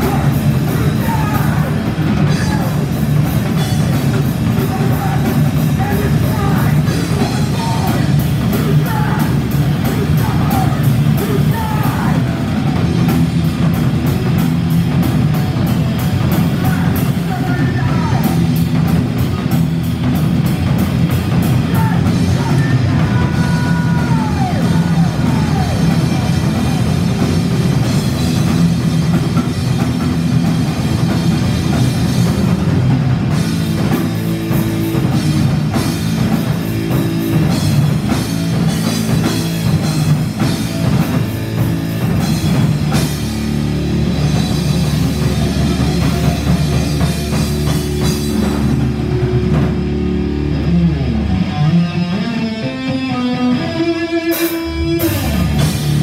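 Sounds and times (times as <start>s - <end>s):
drum kit: 0.0s - 53.6s, 54.2s - 56.0s
bass guitar: 0.0s - 56.0s
distorted electric guitar: 0.0s - 56.0s
full band playing: 0.0s - 56.0s.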